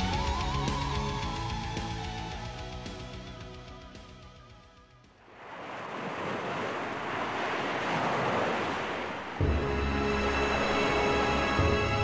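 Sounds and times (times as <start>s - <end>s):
ocean surf rushing: 5.2s - 12.0s.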